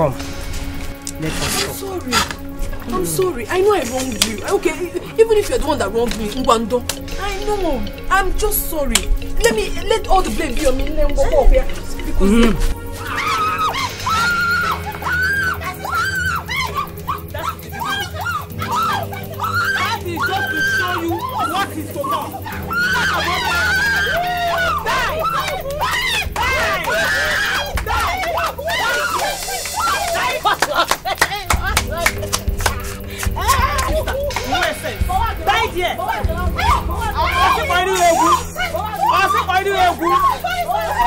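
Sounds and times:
background music: 0.0 - 41.0
low drone: 0.0 - 41.0
woman shrieking: 12.2 - 32.0, 33.4 - 41.0
woman shouting: 13.1 - 30.6, 33.4 - 41.0.

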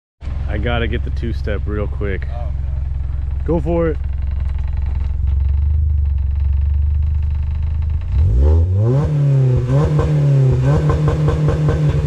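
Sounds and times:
car engine running: 0.2 - 12.0.

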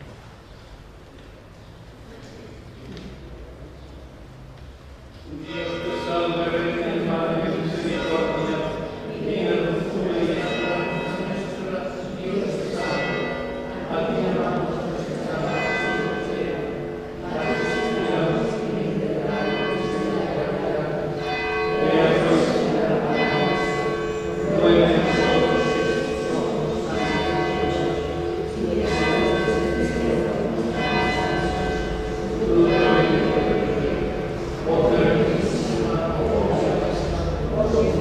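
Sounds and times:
church bells ringing: 5.3 - 38.0.

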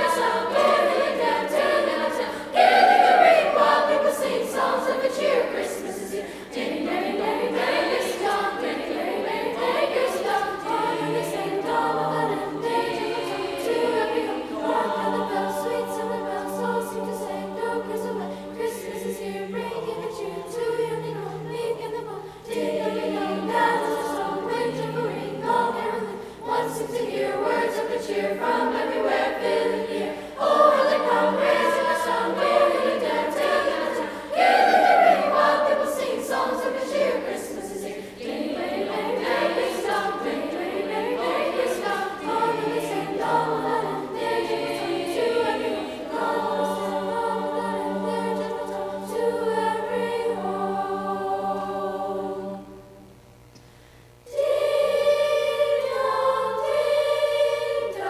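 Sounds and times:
children's choir singing in parts: 0.0 - 53.0, 54.2 - 58.0.

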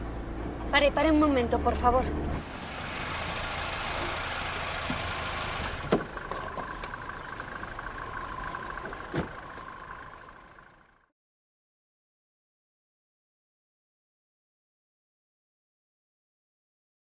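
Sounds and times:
car engine running: 0.0 - 11.1
street traffic: 0.0 - 11.1
car door shutting thud: 5.7 - 6.7, 8.9 - 9.6
car door unlatching click: 9.0 - 9.4.

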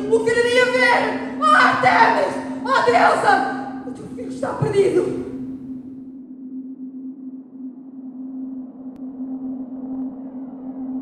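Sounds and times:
low musical drone: 0.0 - 11.0.

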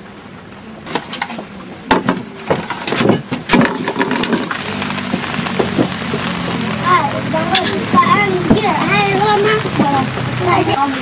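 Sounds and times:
plates and bowls clinking: 0.9 - 4.6.

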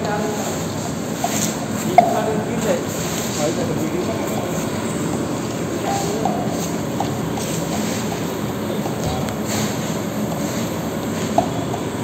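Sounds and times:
faint voices: 0.0 - 10.4.

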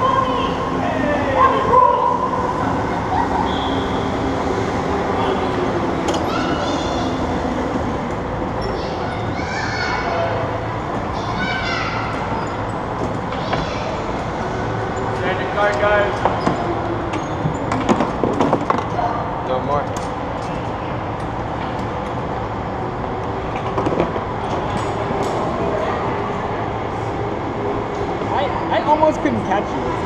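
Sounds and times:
indistinct chatter of people: 0.0 - 30.0.

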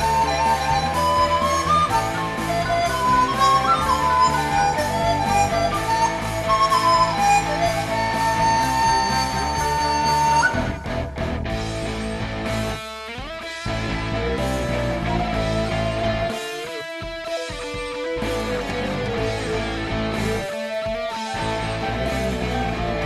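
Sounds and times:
bamboo flute melody: 0.0 - 11.3, 20.4 - 23.0
band backing track with guitar: 0.0 - 23.0.

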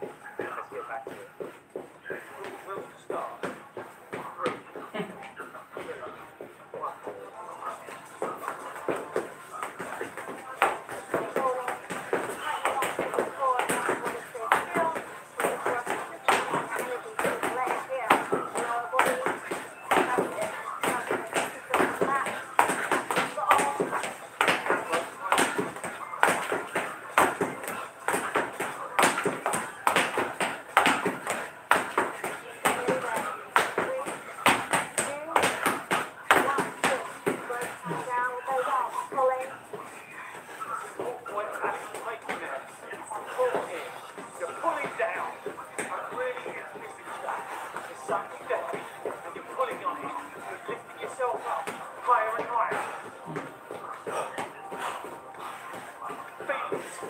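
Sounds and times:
feet tapping and thudding on hard floor: 8.2 - 38.2.

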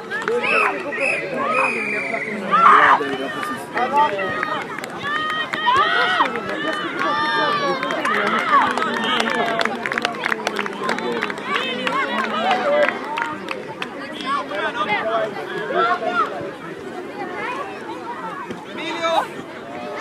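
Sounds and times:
crowd shouting and calling: 0.0 - 20.0.

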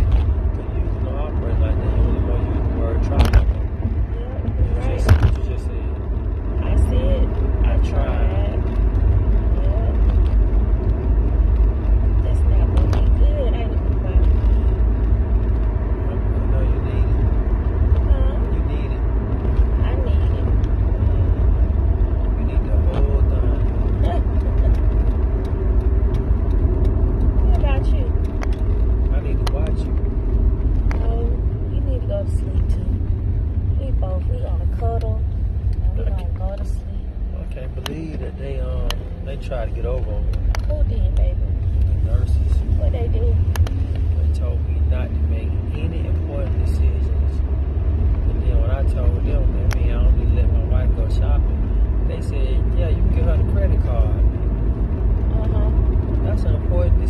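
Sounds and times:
car road and engine rumble: 0.0 - 57.0.

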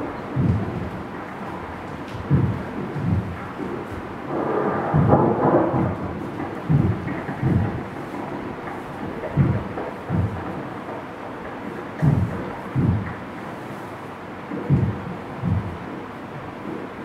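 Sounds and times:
deep drum strikes: 0.3 - 1.0, 2.2 - 10.6, 12.0 - 13.1, 14.6 - 15.9
low rumbling: 4.2 - 7.8.

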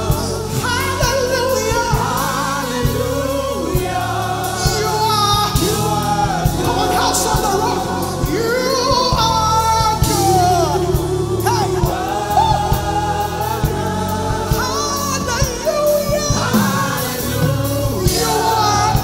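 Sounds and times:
band with drum beat and bass: 0.0 - 19.0
voices singing: 0.0 - 19.0.

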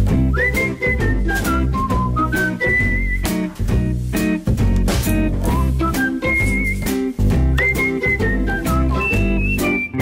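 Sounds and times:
bass line: 0.0 - 10.0
whistled melody: 0.1 - 3.9, 5.4 - 10.0.

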